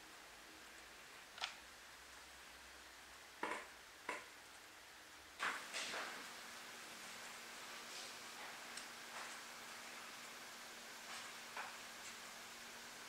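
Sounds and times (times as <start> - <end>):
faint hiss: 0.0 - 13.0.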